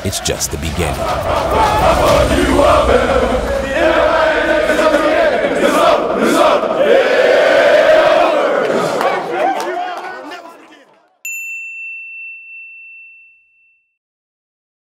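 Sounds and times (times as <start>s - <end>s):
players shouting and chanting: 0.0s - 11.2s
bright chime ringing: 11.2s - 13.9s.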